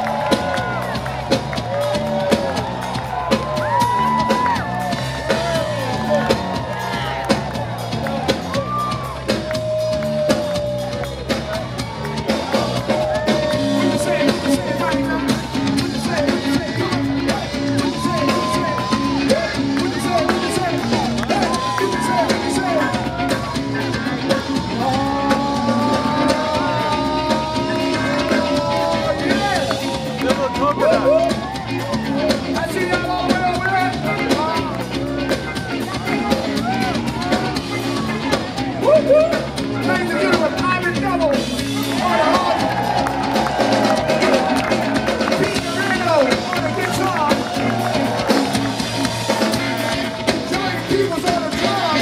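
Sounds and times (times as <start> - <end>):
bass guitar: 0.0 - 52.0
drum kit steady beat: 0.0 - 52.0
live band playing: 0.0 - 52.0.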